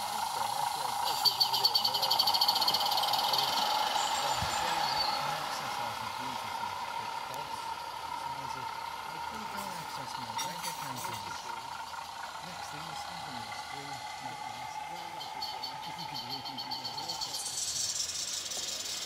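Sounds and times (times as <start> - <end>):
model train wheels humming on rails: 0.0 - 19.0.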